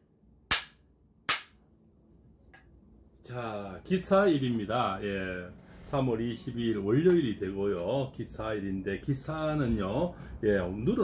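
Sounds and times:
bamboo clapper claps: 0.5s - 1.6s.

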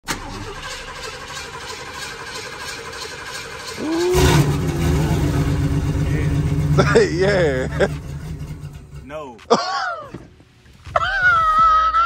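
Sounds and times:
car engine rumbling: 0.1s - 11.0s.

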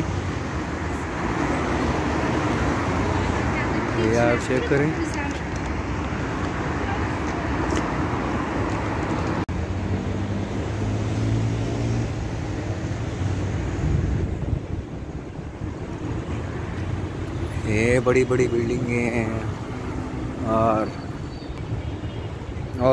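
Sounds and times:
passing vehicle engine hum: 0.0s - 21.8s
car tyres and engines rushing: 0.0s - 22.9s.

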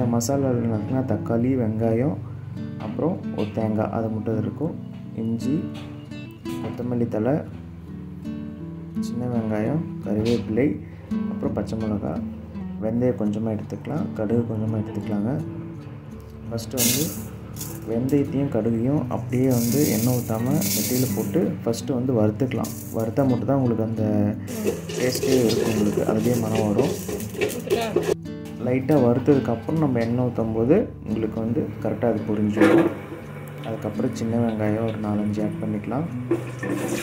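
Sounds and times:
person talking: 16.7s - 32.9s
seeds rattling into metal pot: 16.8s - 17.9s, 19.4s - 21.5s, 22.6s - 23.2s, 24.5s - 28.2s.

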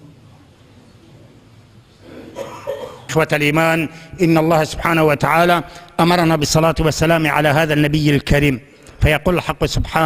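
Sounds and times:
person coughing: 2.0s - 3.2s.

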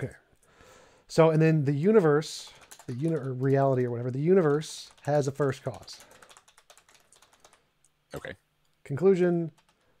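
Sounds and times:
computer keyboard typing: 1.9s - 7.7s, 9.5s - 9.9s.

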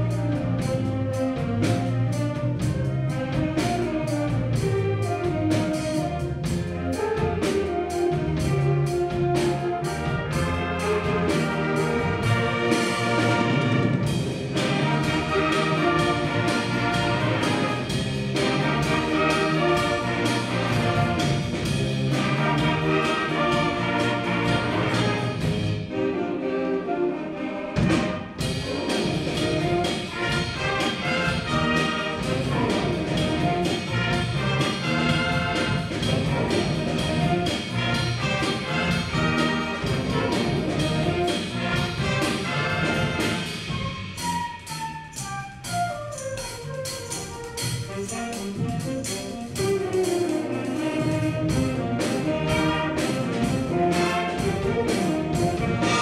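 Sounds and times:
concert band playing: 0.0s - 56.0s.

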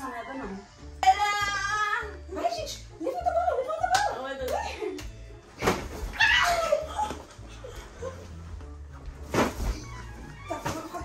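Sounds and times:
pillows swishing and striking: 5.5s - 6.7s, 9.1s - 11.0s.

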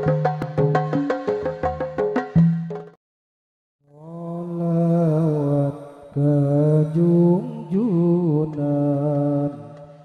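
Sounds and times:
man singing through a sound system: 3.9s - 10.0s.

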